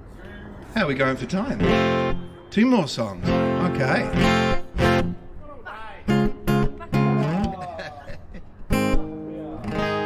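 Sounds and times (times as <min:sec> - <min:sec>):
acoustic guitar strummed chords: 0:01.6 - 0:05.3, 0:08.7 - 0:10.0.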